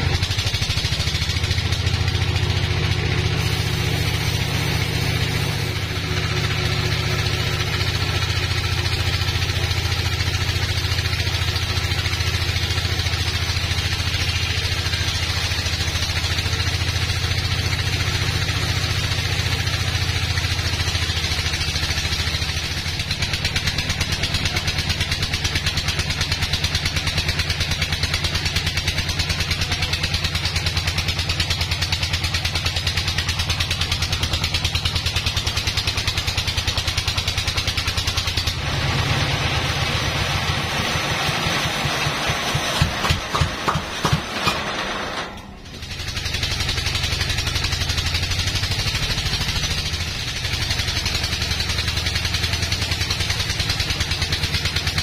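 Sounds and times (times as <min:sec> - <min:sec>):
band sawmill cutting log: 0:00.0 - 0:55.0.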